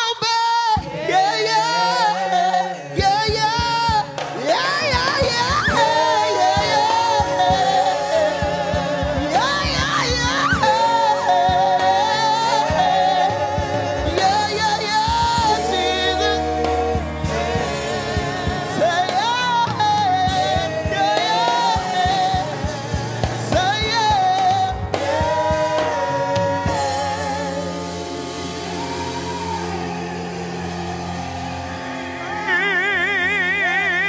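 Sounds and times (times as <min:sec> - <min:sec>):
woman leading singing: 0:00.0 - 0:29.9
choir singing worship song: 0:00.0 - 0:34.0
live instrumental accompaniment: 0:00.0 - 0:34.0.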